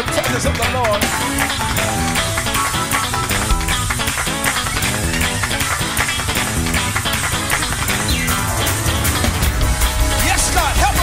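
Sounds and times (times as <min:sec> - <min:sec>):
busy drums: 0:00.0 - 0:11.0
church band playing gospel: 0:00.1 - 0:11.0.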